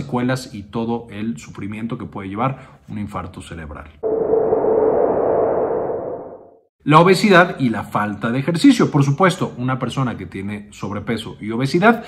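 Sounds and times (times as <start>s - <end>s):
whoosh with ringing tone: 4.0s - 6.6s.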